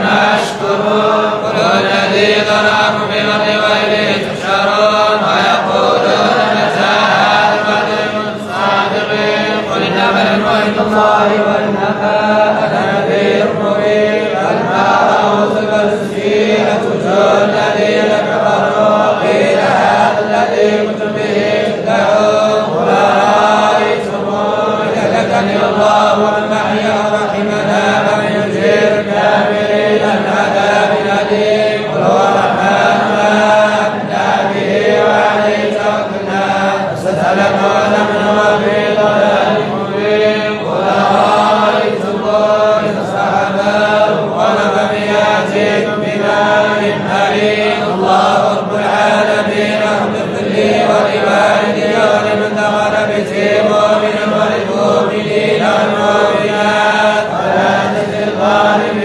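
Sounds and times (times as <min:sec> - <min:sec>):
men chanting together: 0:00.0 - 0:59.0.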